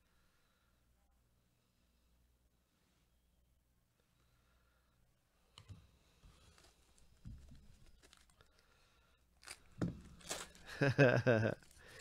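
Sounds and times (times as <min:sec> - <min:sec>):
cards rustling: 0:06.2 - 0:08.7, 0:09.4 - 0:12.0
foil wrapper crinkling and tearing: 0:06.3 - 0:08.7, 0:09.4 - 0:12.0
person laughing: 0:10.6 - 0:12.0.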